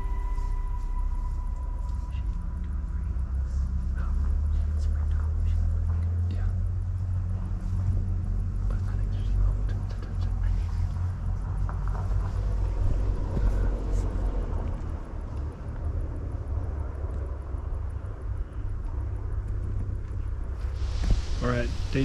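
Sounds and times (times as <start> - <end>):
wind buffeting microphone: 10.4 - 22.0.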